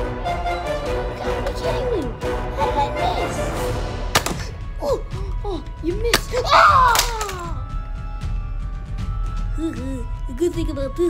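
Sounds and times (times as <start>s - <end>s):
background music: 0.0s - 11.0s
loud falling cry: 6.4s - 7.6s.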